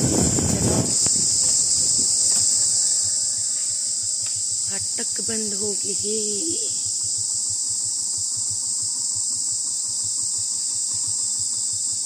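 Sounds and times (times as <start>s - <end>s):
insects shrilling: 0.0s - 12.0s
person calling out: 4.8s - 6.8s.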